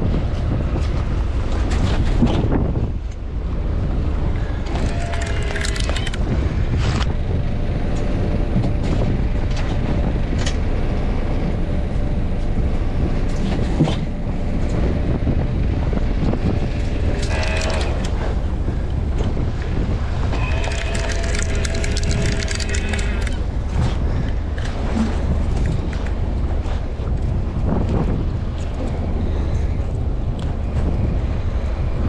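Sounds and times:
boat noise: 0:00.0 - 0:32.0
wind: 0:00.0 - 0:32.0
fishing gear clicks and clatter: 0:04.7 - 0:06.2, 0:17.2 - 0:18.1, 0:20.3 - 0:23.4
short whining tones: 0:20.3 - 0:23.4.

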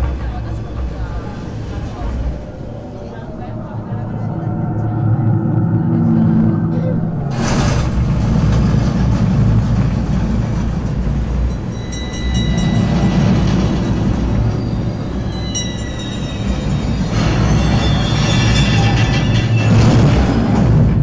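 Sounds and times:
ride vehicle rumbling along track: 0:00.0 - 0:21.0.

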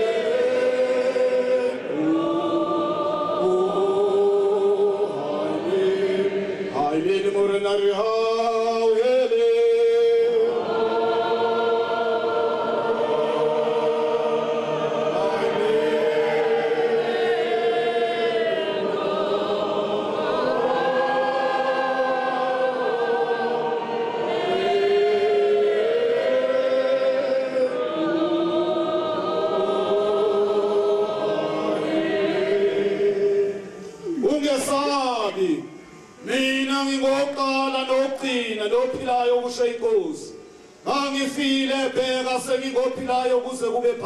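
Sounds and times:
choir singing a hymn: 0:00.0 - 0:44.0.

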